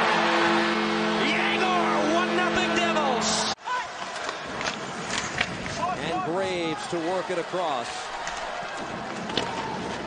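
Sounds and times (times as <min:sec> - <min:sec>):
skates and sticks on ice: 0:03.8 - 0:10.0.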